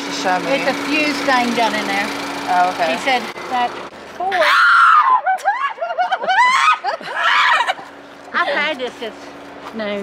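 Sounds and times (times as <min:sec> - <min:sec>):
woman laughing: 0:05.2 - 0:08.8.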